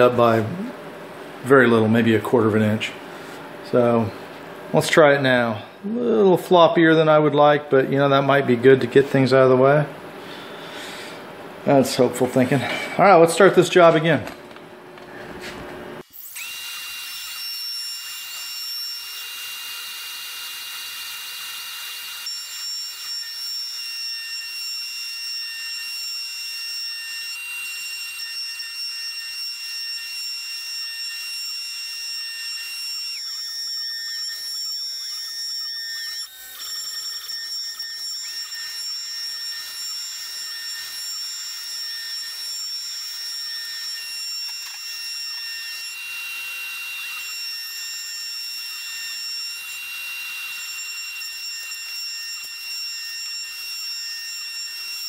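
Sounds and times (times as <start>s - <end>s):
shop vacuum running: 0.0s - 2.0s, 9.1s - 17.4s
router spindle whining: 16.0s - 55.0s.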